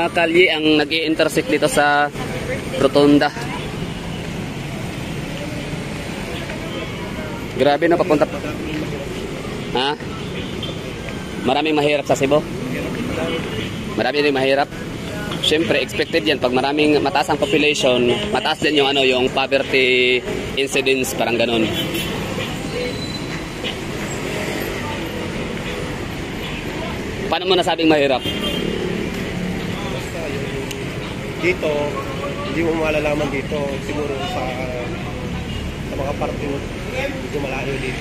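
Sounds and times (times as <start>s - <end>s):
city street traffic: 0.0s - 38.0s
faint voices of passers-by: 0.0s - 38.0s.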